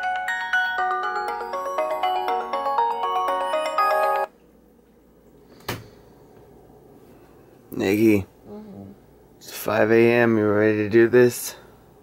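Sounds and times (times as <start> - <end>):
phone alarm chime: 0.0 - 4.3.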